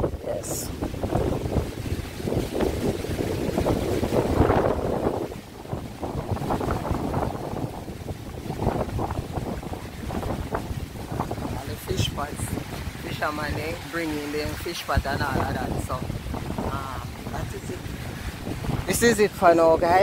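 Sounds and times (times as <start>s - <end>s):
gusty wind buffeting microphone: 0.0s - 20.0s
surf washing onto rocky shore: 0.0s - 20.0s.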